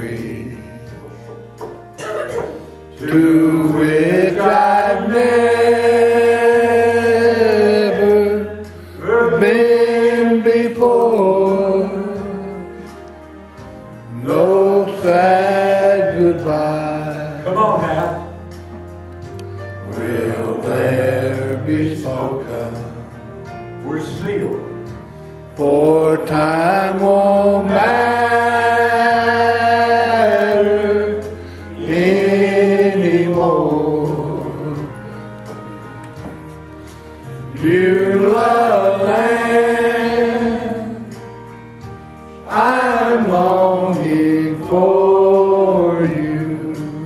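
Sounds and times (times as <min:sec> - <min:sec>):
man singing gospel song: 0:00.0 - 0:01.1, 0:02.9 - 0:13.0, 0:14.1 - 0:18.5, 0:19.6 - 0:35.3, 0:37.3 - 0:41.3, 0:42.4 - 0:47.0
faint musical accompaniment: 0:00.0 - 0:47.0.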